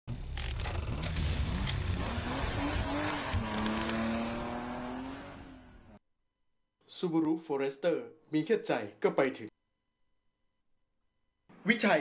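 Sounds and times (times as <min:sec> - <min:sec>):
race car engine revving: 0:00.1 - 0:06.0.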